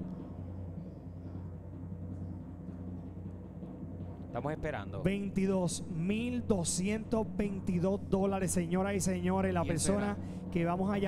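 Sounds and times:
low timpani drum roll: 0.0 - 11.0.

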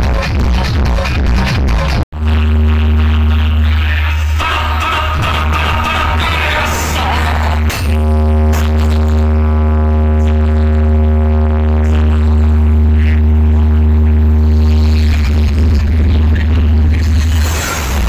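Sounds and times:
heavy bass: 0.0 - 18.0
loud electronic music: 0.0 - 18.0.

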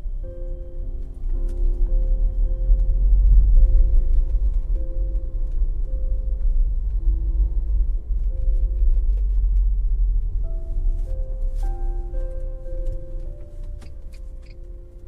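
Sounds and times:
loud low rumble: 0.0 - 15.0
soft slow music: 0.0 - 15.0.

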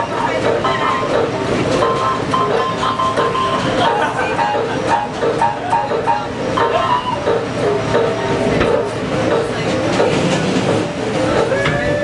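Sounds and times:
subway rail noise: 0.0 - 12.0.

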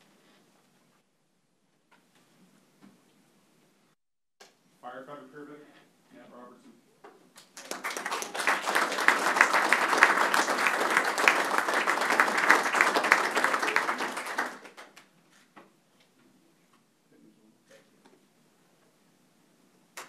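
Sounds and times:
audience applauding: 7.4 - 15.0.

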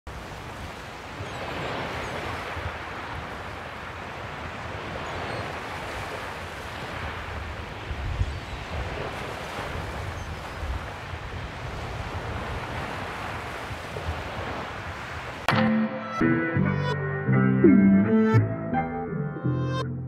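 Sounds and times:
wind gusting against microphone: 0.1 - 15.5.

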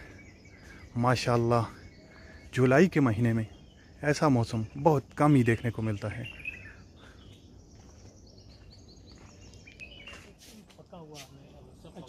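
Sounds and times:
faint bird chirps: 0.0 - 12.0
low outdoor background noise: 0.0 - 12.0.

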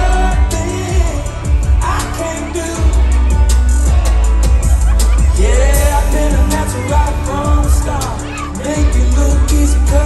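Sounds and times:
live band playing: 0.0 - 10.0
person singing: 0.0 - 10.0.

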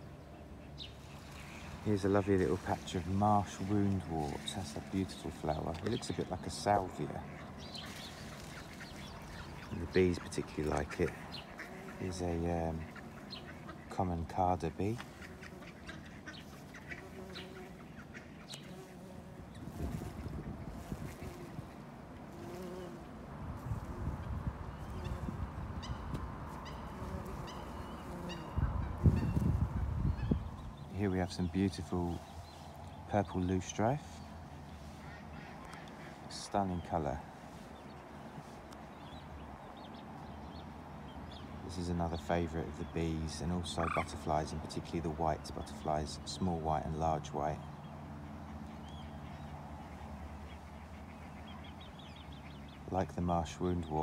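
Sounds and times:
goose honking: 43.7 - 44.3.

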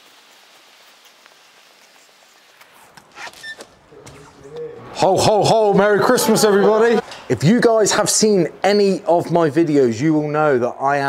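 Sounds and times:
faint outdoor background hiss: 0.0 - 11.0
footsteps: 0.9 - 5.1.

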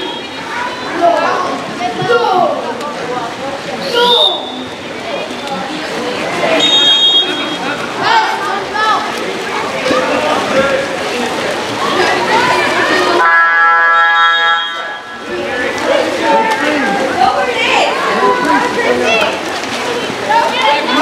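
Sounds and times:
spectators and players calling out: 0.0 - 21.0
steady pitched tone: 13.2 - 15.5.

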